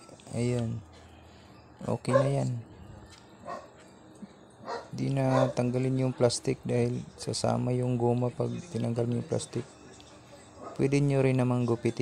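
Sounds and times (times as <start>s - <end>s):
dog barking faintly: 2.1s - 2.5s, 4.6s - 5.7s.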